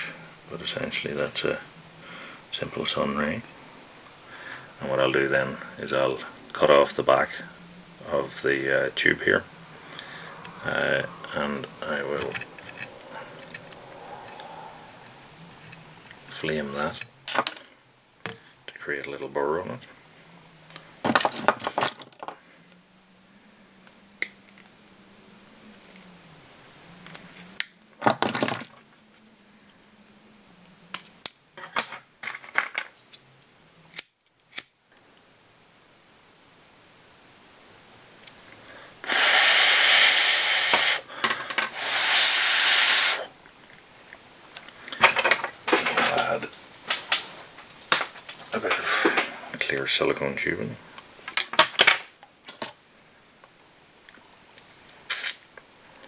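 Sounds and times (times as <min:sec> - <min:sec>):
tools clicking and snipping: 0:33.9 - 0:34.7
lighter flame hissing: 0:39.0 - 0:43.4.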